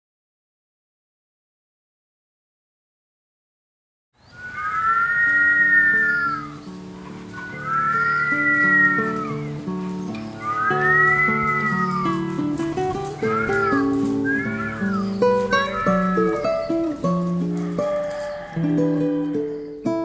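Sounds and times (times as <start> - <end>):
people whistling together: 4.4 - 6.6, 7.3 - 9.5, 10.4 - 12.2, 13.6 - 15.5.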